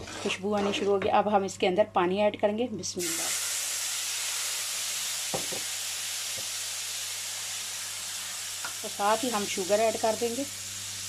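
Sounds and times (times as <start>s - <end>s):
water hissing and sizzling in pan: 3.0s - 11.0s.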